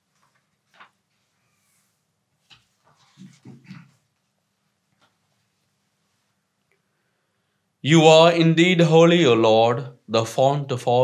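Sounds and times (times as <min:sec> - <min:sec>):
pages being handled: 0:00.0 - 0:04.0.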